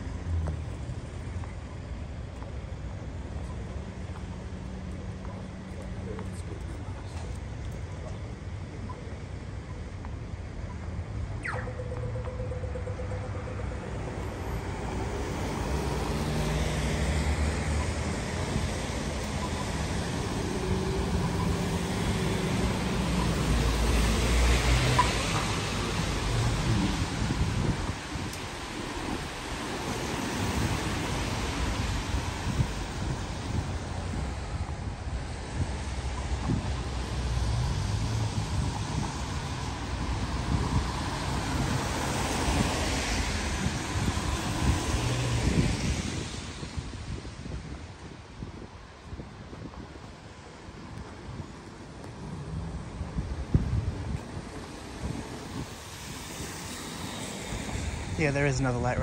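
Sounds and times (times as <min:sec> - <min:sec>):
wind noise on microphone: 0:11.0 - 0:59.0
tyres hissing on wet road: 0:14.6 - 0:34.6, 0:35.2 - 0:48.2, 0:52.1 - 0:59.0.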